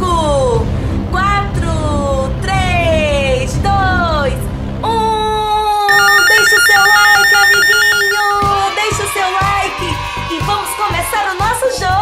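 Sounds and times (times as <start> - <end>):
warbling electronic trill: 5.9 - 8.6
held synthesized tone: 5.9 - 8.7.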